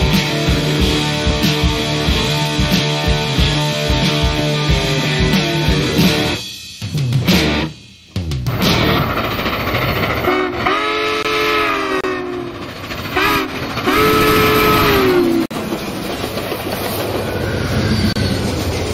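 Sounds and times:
train rumbling past: 0.0 - 6.5, 8.4 - 18.9
steam locomotive chime whistle: 10.1 - 15.5.

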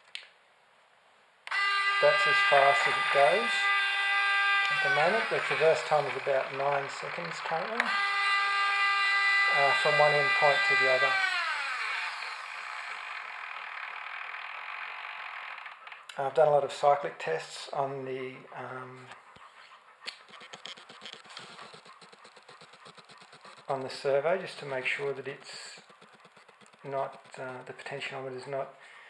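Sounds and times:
servo high gear whine: 1.5 - 15.9, 20.2 - 27.7.

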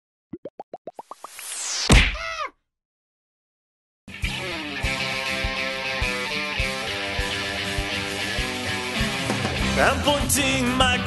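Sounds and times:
bubble-like plops rising in pitch: 0.3 - 1.4.

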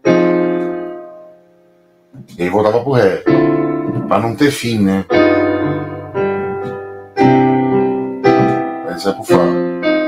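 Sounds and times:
piano chords on keyboard: 0.0 - 10.0.

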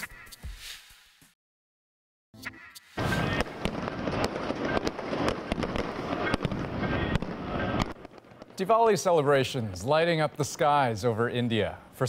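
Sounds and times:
fireworks crackling and banging: 3.0 - 12.0.

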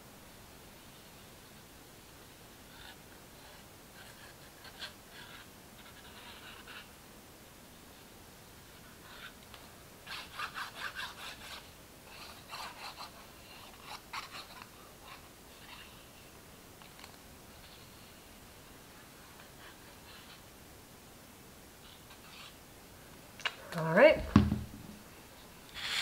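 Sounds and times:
glue nozzle scratching on card: 10.1 - 15.9.

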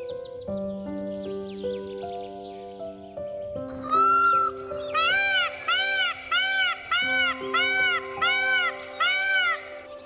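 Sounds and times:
soft background music: 0.0 - 10.0
peacock wailing call: 3.8 - 10.0.

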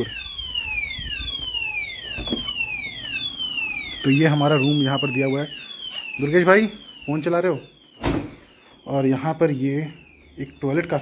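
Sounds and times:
electronic alarm whistles: 0.0 - 11.0.

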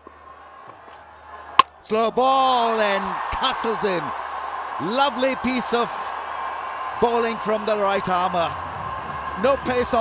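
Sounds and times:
cricket ball hitting stumps: 0.7 - 1.8.

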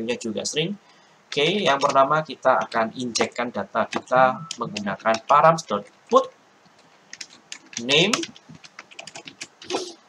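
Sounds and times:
keyboard typing: 1.3 - 10.0.

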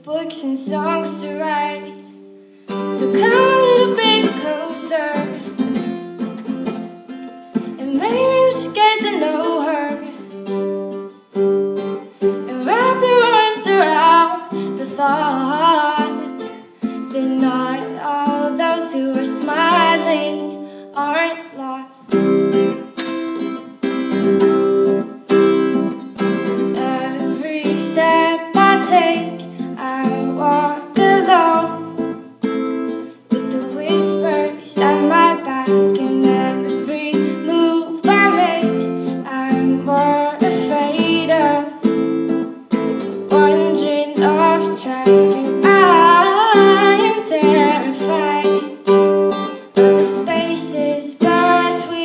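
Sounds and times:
woman singing slow song: 0.0 - 5.6, 7.8 - 10.3, 12.3 - 22.1, 26.5 - 32.1, 33.3 - 41.9, 43.2 - 52.0
strummed acoustic guitar: 0.0 - 52.0.

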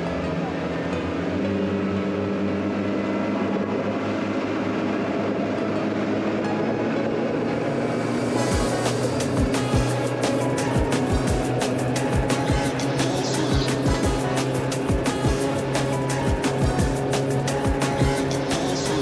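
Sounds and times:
background music: 0.0 - 19.0
outboard engines running: 0.0 - 19.0.

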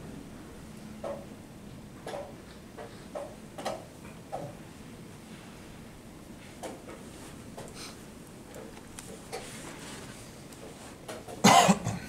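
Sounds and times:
person coughing: 11.4 - 12.0.

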